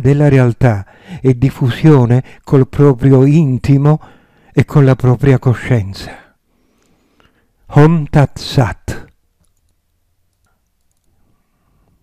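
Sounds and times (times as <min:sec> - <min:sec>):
man speaking: 0:00.0 - 0:04.0, 0:04.6 - 0:06.3, 0:07.7 - 0:09.2.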